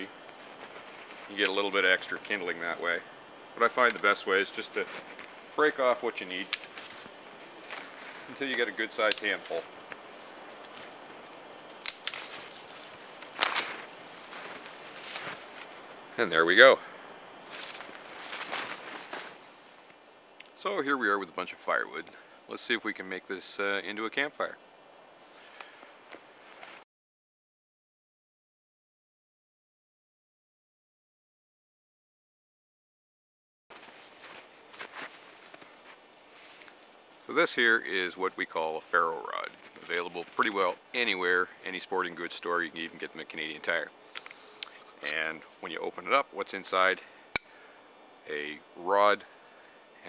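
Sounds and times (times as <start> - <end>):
branches rustling: 0.2 - 3.0, 3.6 - 16.2, 17.3 - 20.0, 33.7 - 38.2, 39.3 - 41.6
footsteps crunching in snow: 0.4 - 2.7, 4.0 - 11.0, 12.0 - 16.0, 17.4 - 19.9, 26.1 - 26.8, 33.7 - 37.0
dry twigs snapping: 3.8 - 4.2, 4.9 - 8.2, 9.0 - 15.7, 17.4 - 19.3.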